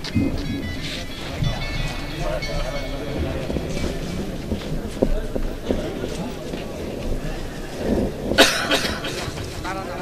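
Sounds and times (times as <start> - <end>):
people talking indistinctly: 0.2 - 10.0
loud cough: 8.4 - 9.4.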